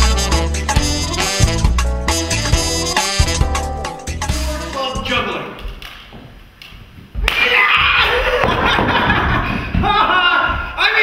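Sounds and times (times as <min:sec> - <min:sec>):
man's loud voice: 0:04.4 - 0:05.6, 0:10.0 - 0:11.0.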